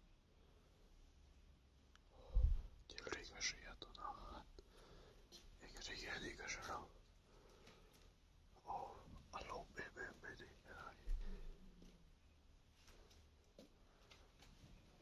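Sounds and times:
person whispering: 2.2s - 4.7s, 5.6s - 7.0s, 8.6s - 11.8s
dull low thump: 2.4s - 2.7s.

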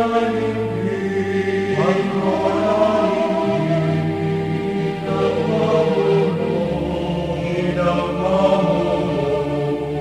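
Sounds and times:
choral chanting in held notes: 0.0s - 10.0s.

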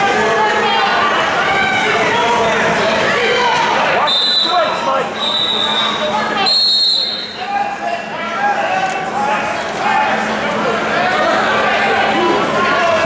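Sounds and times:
crowd chatter: 0.0s - 13.0s
high whistle blasts: 4.0s - 7.4s.

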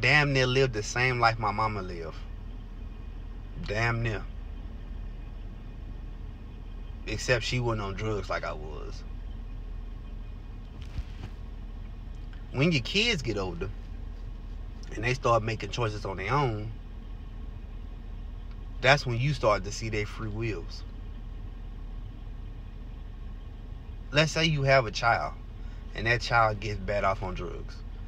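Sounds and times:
car cabin hum: 0.0s - 28.0s.

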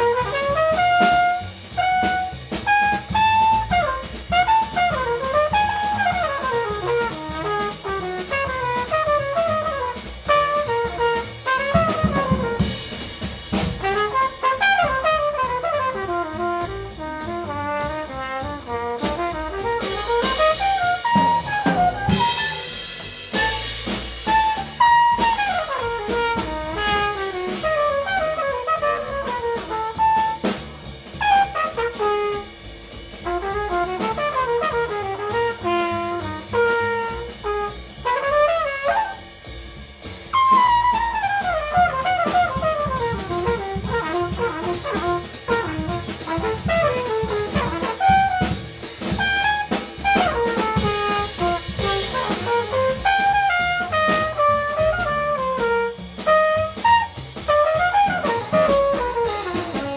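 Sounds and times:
trumpet improvising: 0.0s - 32.6s, 33.2s - 39.6s, 40.2s - 59.9s
double bass: 0.0s - 59.9s
drum kit with cymbals: 0.0s - 59.9s.

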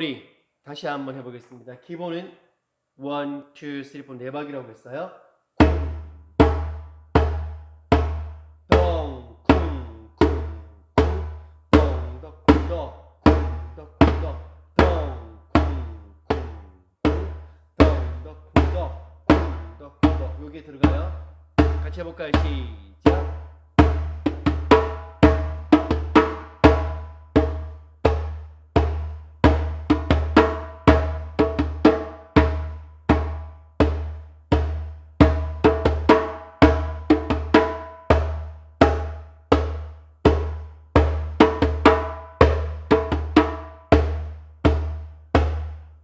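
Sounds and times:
hand drum struck with palms: 23.1s - 45.8s.

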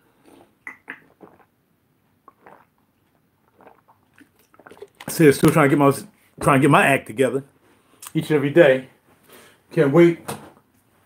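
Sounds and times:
person gulping water: 0.2s - 5.6s.

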